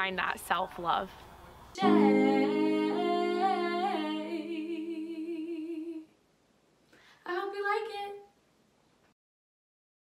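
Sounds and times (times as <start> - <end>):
digital keyboard chord: 1.8 - 4.4.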